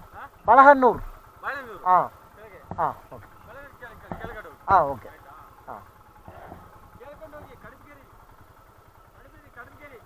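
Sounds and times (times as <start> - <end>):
distant voices calling: 0.0 - 10.0
motorcycle engine idling: 0.0 - 10.0.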